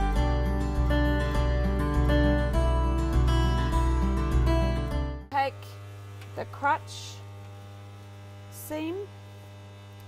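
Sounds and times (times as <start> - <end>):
guitar music: 0.0 - 5.5.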